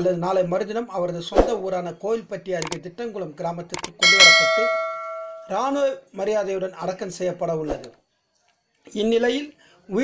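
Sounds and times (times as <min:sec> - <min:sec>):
bell chime: 0:04.0 - 0:05.6.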